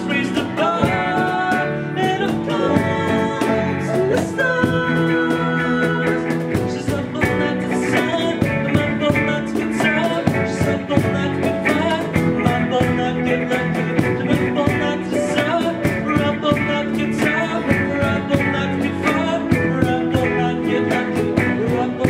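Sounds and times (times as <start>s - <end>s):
bass guitar: 0.0s - 22.0s
drums playing steady beat: 0.0s - 22.0s
electric guitars: 0.0s - 22.0s
keyboard: 0.0s - 22.0s.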